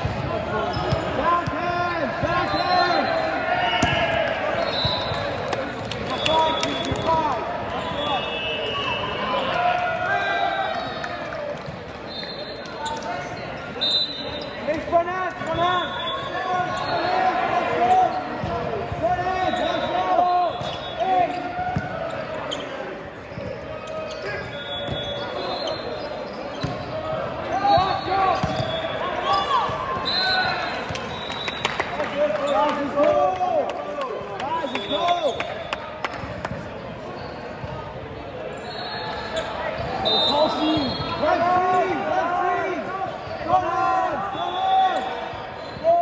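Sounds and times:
sneakers squeaking on floor: 0.6s - 1.5s, 15.4s - 17.1s, 19.4s - 31.6s, 34.6s - 41.6s
players calling: 23.9s - 36.2s, 38.3s - 46.0s.

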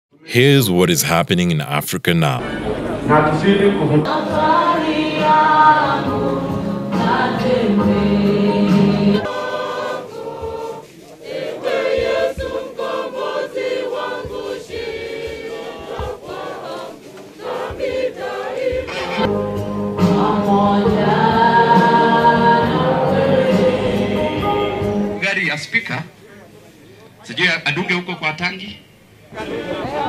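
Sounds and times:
choir singing gospel hymn: 0.3s - 25.2s, 29.4s - 30.0s.

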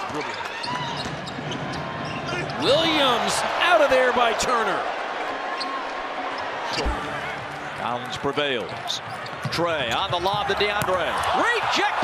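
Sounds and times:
crowd din: 0.9s - 12.0s.

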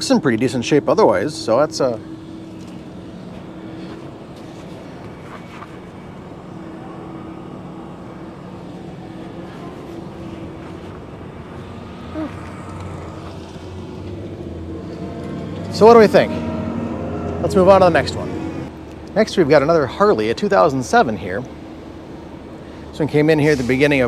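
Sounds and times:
engine humming: 0.0s - 24.0s.

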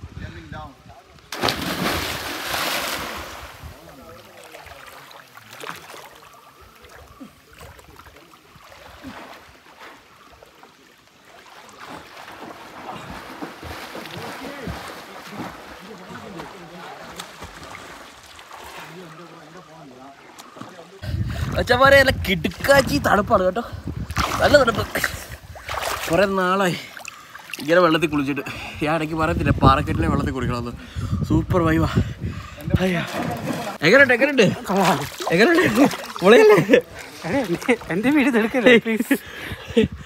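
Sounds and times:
person diving into water splash: 1.3s - 3.6s
water lapping: 1.3s - 21.7s, 23.8s - 28.8s, 32.2s - 40.0s
churning water: 1.3s - 23.3s, 32.7s - 38.6s.

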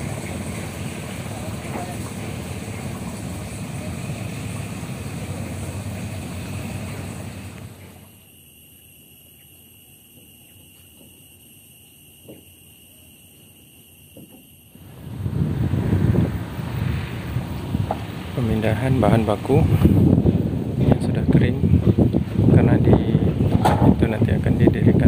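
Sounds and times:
wind rumbling on microphone: 14.8s - 25.0s.

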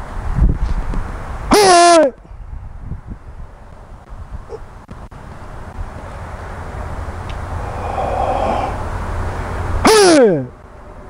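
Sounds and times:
man shouting: 1.5s - 2.2s, 9.8s - 10.6s.

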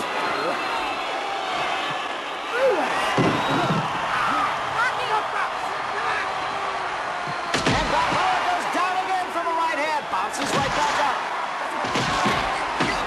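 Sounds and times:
crowd shouting and yelling: 0.0s - 13.0s.

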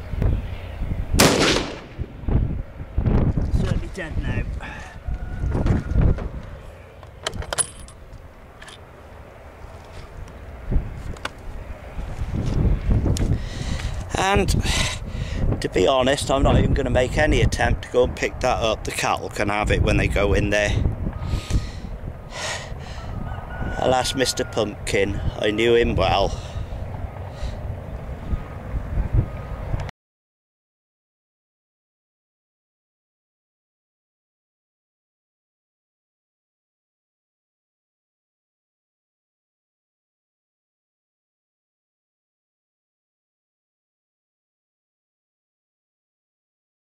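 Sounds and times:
wind buffeting microphone: 0.0s - 8.6s, 9.2s - 29.9s.

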